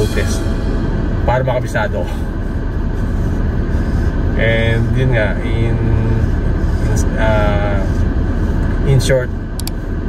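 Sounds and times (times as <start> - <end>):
car cabin rumble and hiss: 0.0 - 10.0.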